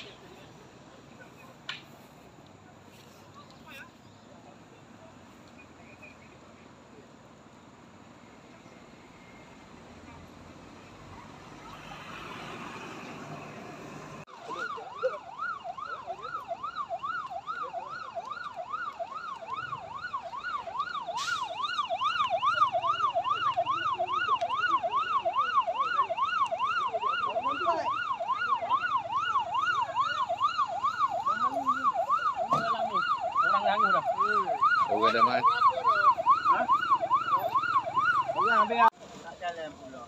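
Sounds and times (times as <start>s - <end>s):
fire engine siren wailing: 9.0s - 38.9s.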